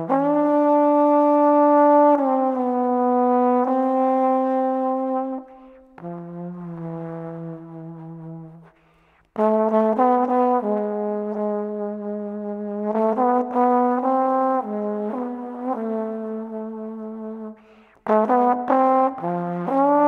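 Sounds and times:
trombone holding long notes: 0.0 - 8.7, 9.4 - 20.0.

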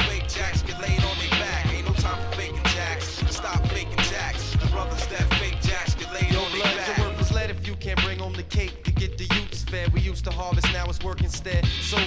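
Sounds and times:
deep bass line: 0.0 - 12.0
rapping over a drum beat: 0.0 - 12.0.

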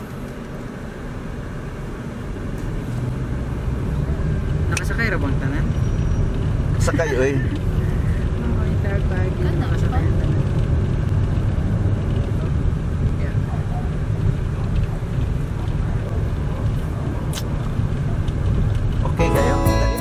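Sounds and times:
car engine rumble from inside: 0.0 - 20.0.

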